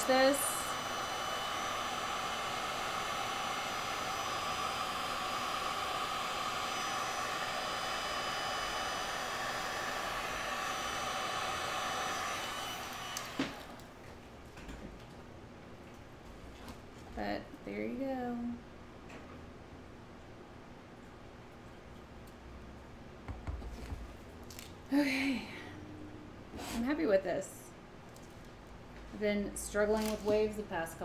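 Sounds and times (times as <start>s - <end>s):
heat gun blowing with whine: 0.0s - 14.0s.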